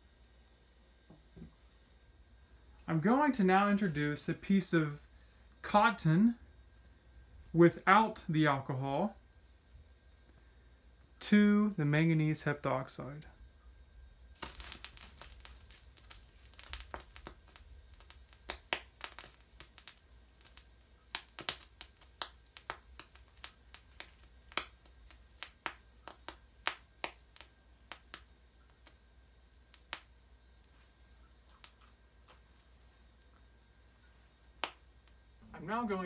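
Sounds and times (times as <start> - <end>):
chemical reaction pops and crackles: 14.0 - 36.0.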